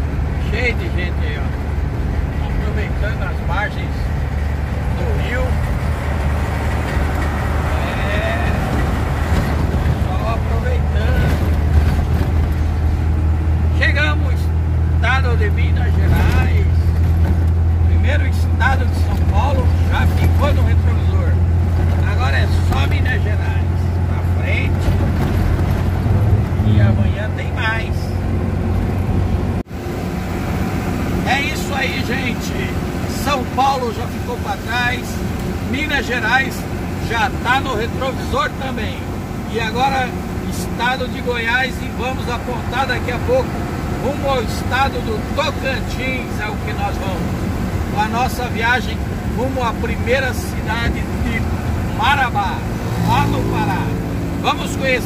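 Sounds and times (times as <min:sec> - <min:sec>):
diesel truck engine droning: 0:00.0 - 0:55.0.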